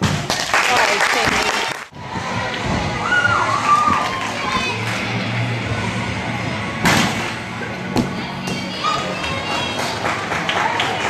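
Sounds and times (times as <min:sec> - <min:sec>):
gym hall noise: 0:00.0 - 0:11.0.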